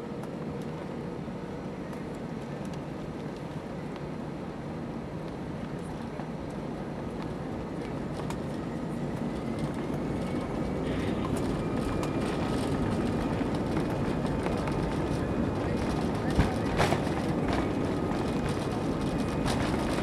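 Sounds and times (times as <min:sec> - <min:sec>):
jet engines rumbling: 0:00.0 - 0:20.0.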